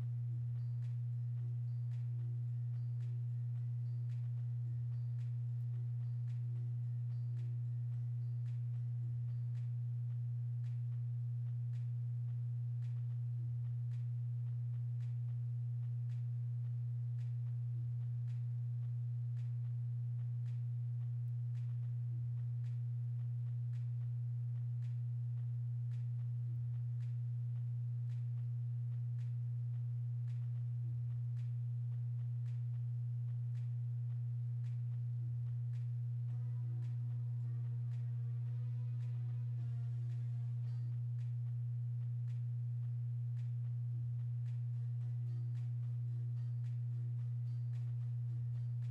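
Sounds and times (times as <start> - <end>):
faint evenly spaced ticks: 0.0 - 48.9
steady low-pitched hum: 0.0 - 48.9.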